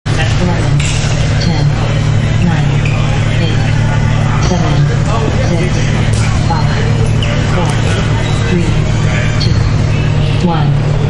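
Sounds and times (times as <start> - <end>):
loud low hum: 0.1 - 11.0
people talking: 0.1 - 11.0.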